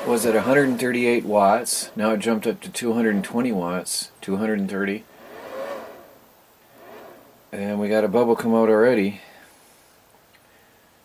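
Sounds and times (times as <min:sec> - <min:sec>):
rush of air-like noise: 0:05.0 - 0:09.9.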